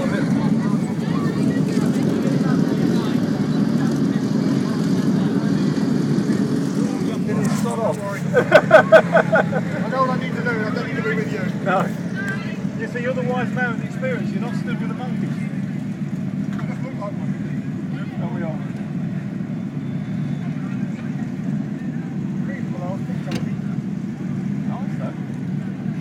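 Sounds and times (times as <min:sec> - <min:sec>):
car engine idling: 0:00.0 - 0:26.0
people's voices: 0:00.0 - 0:26.0.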